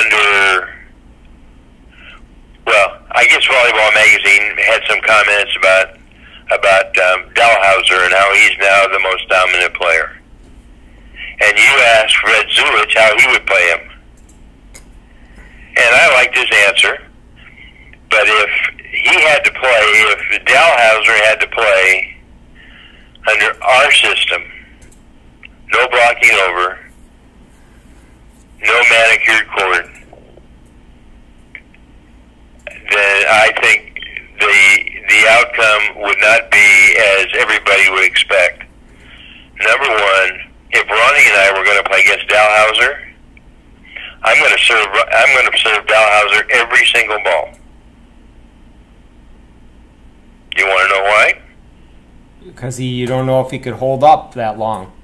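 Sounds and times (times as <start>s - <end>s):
man talking: 0.0s - 0.8s, 2.0s - 10.2s, 11.2s - 14.0s, 15.6s - 24.7s, 25.7s - 26.9s, 28.6s - 30.2s, 32.7s - 43.1s, 43.9s - 47.6s, 50.5s - 51.5s, 52.4s - 55.0s.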